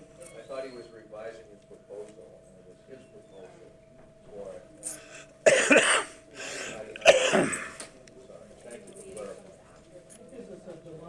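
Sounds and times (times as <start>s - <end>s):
person coughing: 5.5s - 7.8s.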